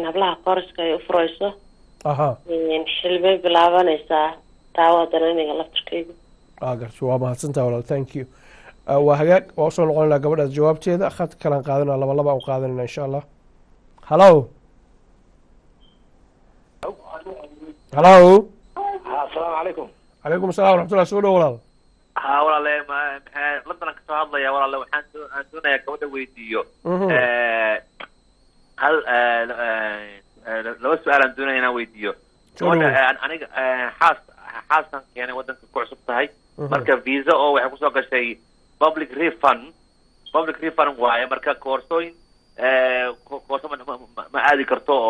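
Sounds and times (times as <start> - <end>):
person speaking over phone: 16.8 - 21.6, 22.2 - 28.1, 28.8 - 39.7
person speaking over telephone: 28.8 - 39.7, 42.6 - 45.0.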